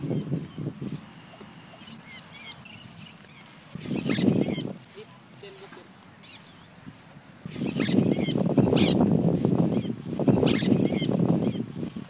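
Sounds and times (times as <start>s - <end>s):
parrots screeching: 1.3s - 4.8s, 6.2s - 6.7s, 7.5s - 9.0s, 9.7s - 11.6s.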